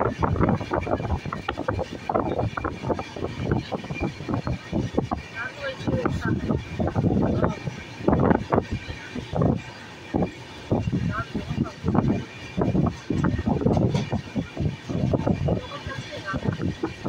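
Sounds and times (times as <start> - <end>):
moving train running noise: 0.0 - 17.0
people talking: 2.9 - 9.6, 10.7 - 17.0.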